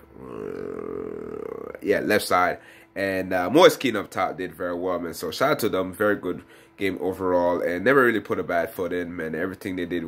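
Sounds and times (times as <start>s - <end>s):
man humming hesitantly: 0.0s - 1.8s.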